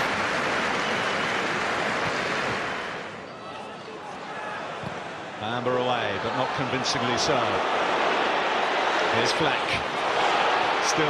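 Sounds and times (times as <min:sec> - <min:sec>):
stadium crowd roar: 0:00.0 - 0:11.0.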